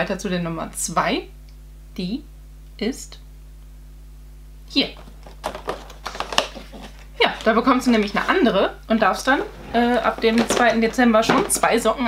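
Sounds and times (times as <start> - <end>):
cardboard door clicking and crackling: 5.0 - 7.0.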